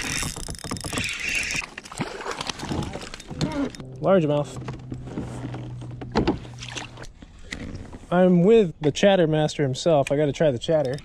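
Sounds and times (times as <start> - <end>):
fish splashing in water: 6.5 - 7.2.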